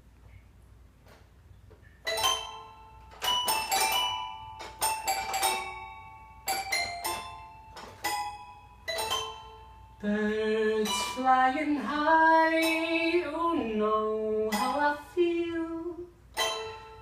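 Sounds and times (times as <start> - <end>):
toy piano chords: 2.0 - 17.0.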